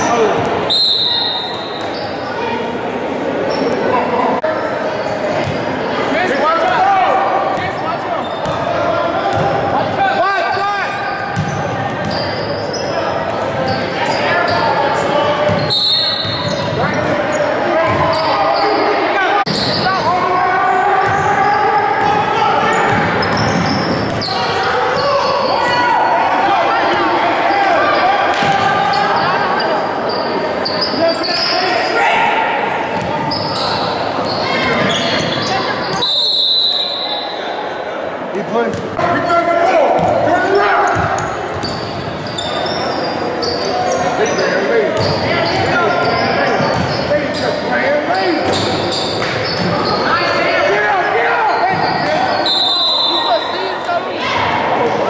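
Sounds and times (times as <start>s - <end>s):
voices calling and shouting: 0.0s - 55.0s.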